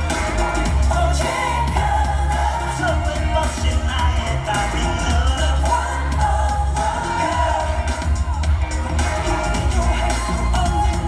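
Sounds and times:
loud boomy bass: 0.0 - 11.0
man singing: 0.0 - 11.0.

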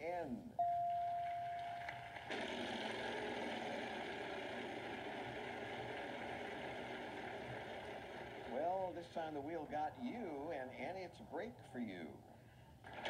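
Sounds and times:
held electronic tone: 0.6 - 3.8.

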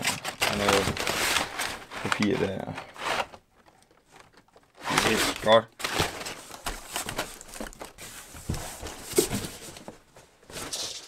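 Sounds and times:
packing paper rustling: 0.0 - 11.0.

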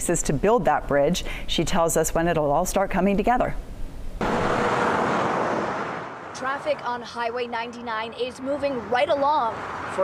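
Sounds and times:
freeway traffic rushing: 4.2 - 10.0.

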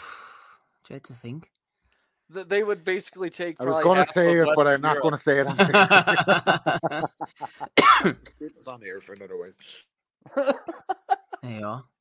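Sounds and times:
man talking: 2.3 - 6.4, 8.4 - 9.8
loud cough: 7.6 - 8.3.

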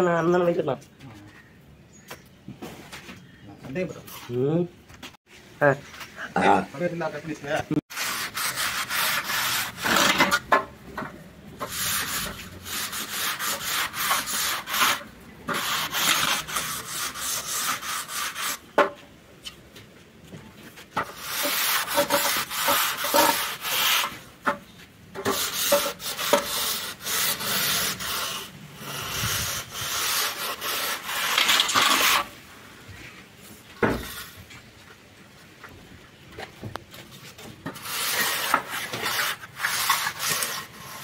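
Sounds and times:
straight edge scraping wet plaster: 7.9 - 10.7, 11.6 - 18.7, 21.0 - 24.2, 25.2 - 32.4, 37.6 - 41.0.

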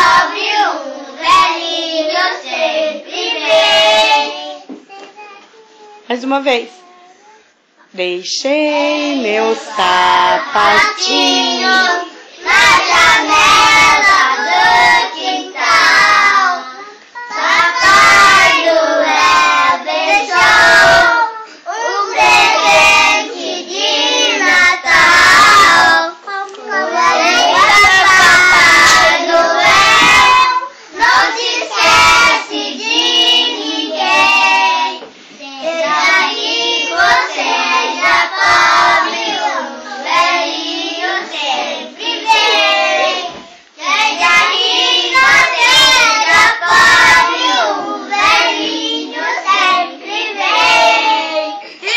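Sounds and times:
children singing together: 0.0 - 4.8, 9.0 - 51.9.

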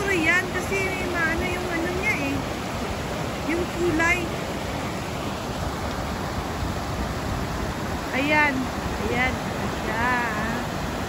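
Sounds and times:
river rushing over rocks: 0.0 - 11.0.

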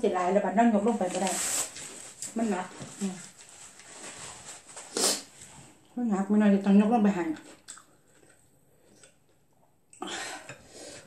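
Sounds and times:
woman speaking: 0.0 - 1.5, 2.3 - 3.3, 6.0 - 7.5.

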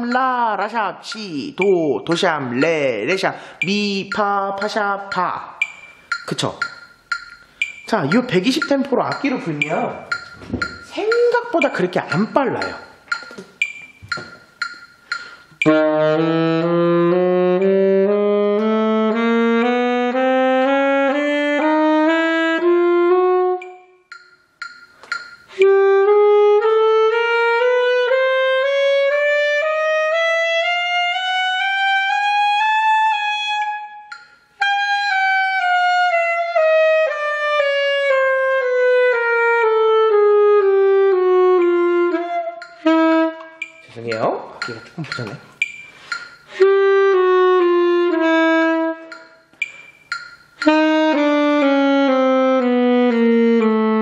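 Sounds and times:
player breathing: 15.0 - 15.6
saxophone playing chromatic scale: 15.2 - 24.0, 25.5 - 43.8, 46.5 - 49.4, 50.6 - 54.0.

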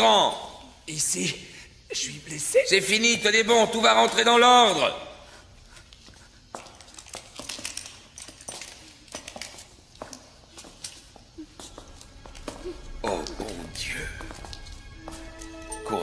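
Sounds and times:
faint clicks and rustles: 5.4 - 12.6.

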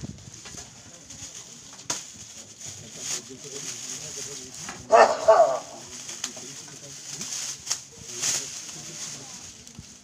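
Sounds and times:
faint murmur of voices: 0.5 - 10.0.

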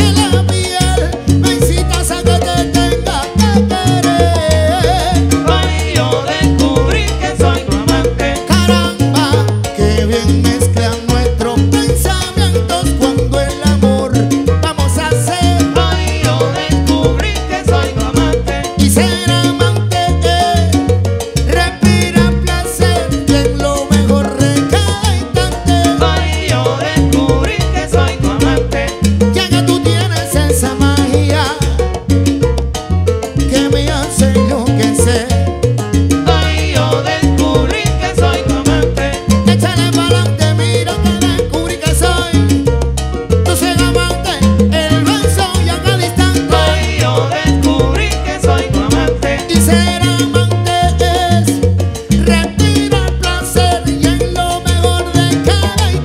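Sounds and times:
live salsa band playing: 0.0 - 56.0.

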